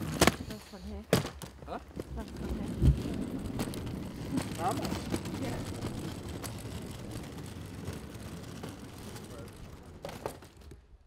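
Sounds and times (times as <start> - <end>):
suitcase wheels rolling on paving: 0.0 - 11.0.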